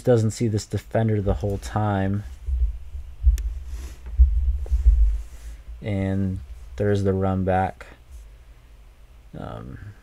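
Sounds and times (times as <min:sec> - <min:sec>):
low thumping rumble: 0:01.2 - 0:07.2.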